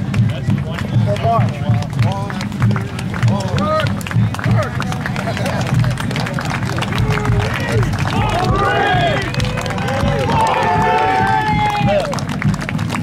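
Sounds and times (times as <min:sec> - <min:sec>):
men calling and shouting: 0:00.0 - 0:12.3.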